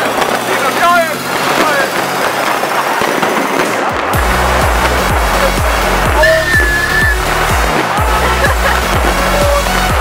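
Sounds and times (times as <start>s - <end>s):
fireworks and firecrackers bangs: 0.0s - 10.0s
electronic music with heavy bass: 3.9s - 10.0s.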